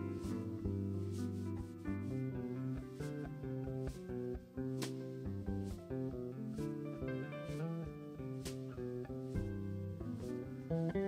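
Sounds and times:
jazz trio playing: 0.0s - 11.0s.

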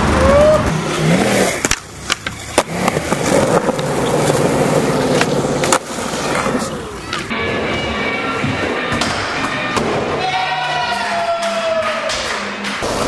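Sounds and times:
skateboard wheels rolling on concrete: 0.0s - 11.8s, 12.6s - 13.0s
skateboard clacks: 1.6s - 7.3s.

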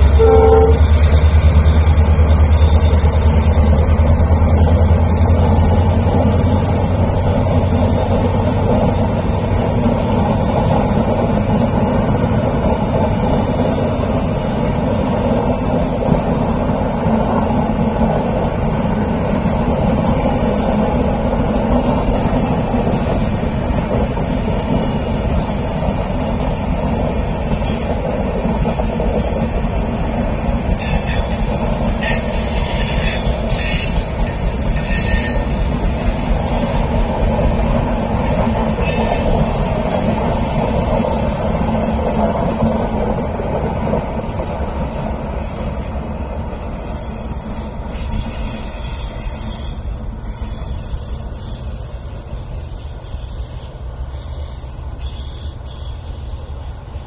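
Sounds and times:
train coaches rumbling past: 0.0s - 57.0s
high-pitched wheel squeals: 30.8s - 37.0s, 38.1s - 39.9s, 46.6s - 56.2s.

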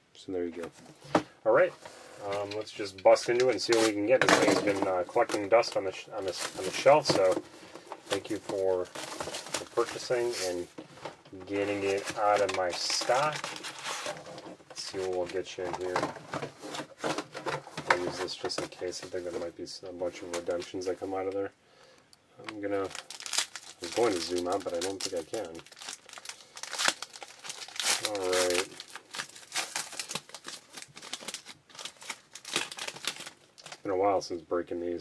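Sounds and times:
card packaging rustling: 1.9s - 21.3s, 22.5s - 33.9s.

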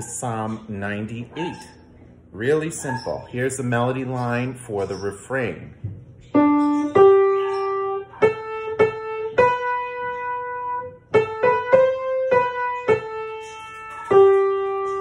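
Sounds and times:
piano single-note melody: 6.2s - 15.0s.

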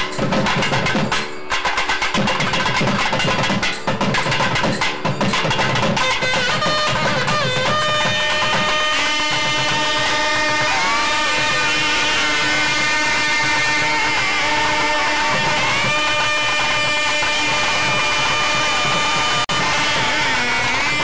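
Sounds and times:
sliding melody line: 5.4s - 21.0s.

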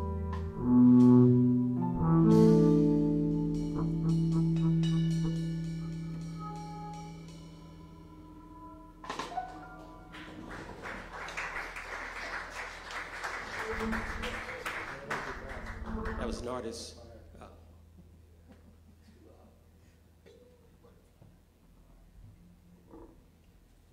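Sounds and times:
jazz band closing chord: 0.0s - 11.5s
audience applause: 10.1s - 16.6s.

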